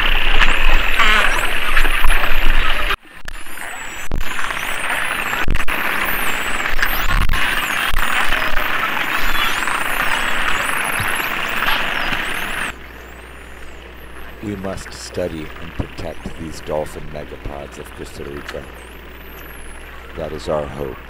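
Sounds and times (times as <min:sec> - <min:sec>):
low steady hum: 0:00.0 - 0:21.0
underwater water noise: 0:00.0 - 0:21.0
dolphin whistles: 0:00.2 - 0:02.7
person speaking: 0:14.4 - 0:18.8.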